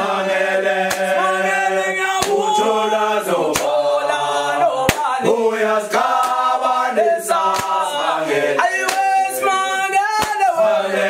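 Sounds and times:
choir chanting: 0.0s - 11.0s.

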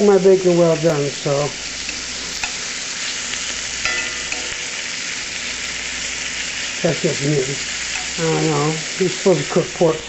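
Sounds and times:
bacon sizzling in a skillet: 0.0s - 10.0s.

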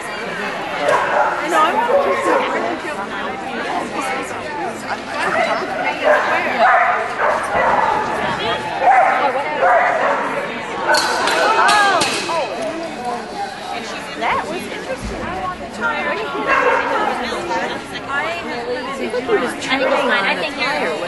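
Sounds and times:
people chattering: 0.0s - 21.0s
dog barking: 6.0s - 8.0s, 8.8s - 10.3s, 16.5s - 17.0s.

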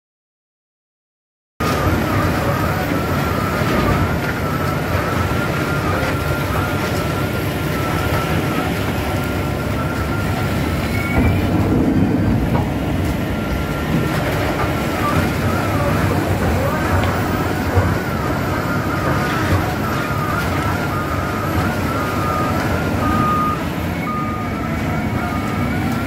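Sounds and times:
diesel engine droning: 1.6s - 26.0s.

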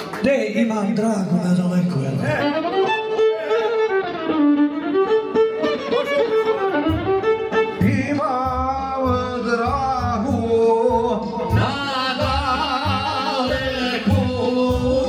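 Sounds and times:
violin melody: 2.2s - 10.2s.

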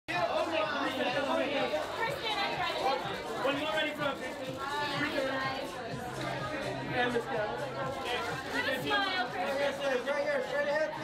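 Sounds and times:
voices chattering: 0.1s - 11.0s.

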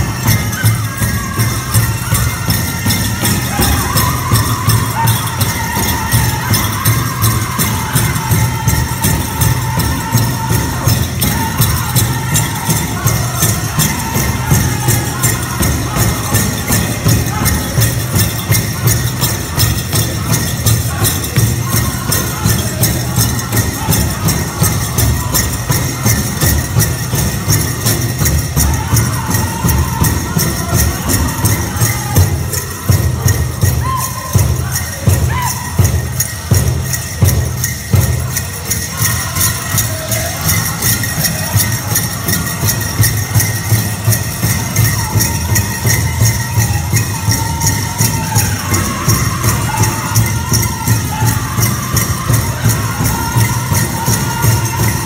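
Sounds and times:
dancers' bells jingling: 0.0s - 55.0s
large drum steady beat: 0.0s - 55.0s
men singing in high voices: 0.0s - 55.0s.

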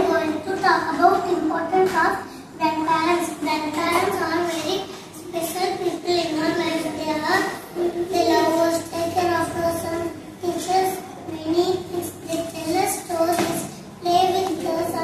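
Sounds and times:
girl reciting a speech: 0.0s - 15.0s.

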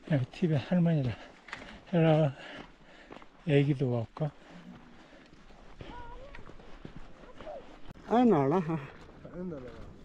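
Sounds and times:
footsteps on gravel: 0.5s - 10.0s
faint voice: 5.8s - 6.5s.

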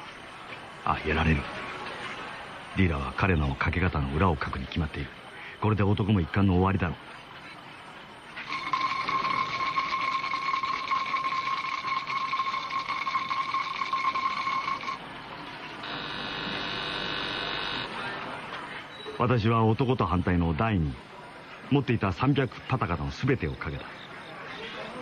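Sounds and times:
soft steady multi-pitch tone: 7.9s - 18.0s
loud buzzing ringing tone with rattle: 8.4s - 15.1s, 15.8s - 18.0s.

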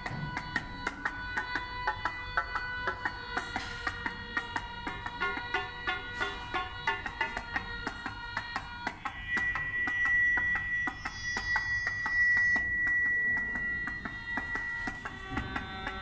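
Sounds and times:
plucked electronic notes and clicks: 0.0s - 16.0s.

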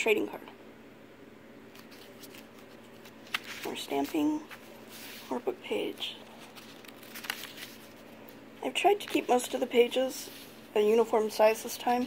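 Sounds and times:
paper pages turning: 1.7s - 10.7s.

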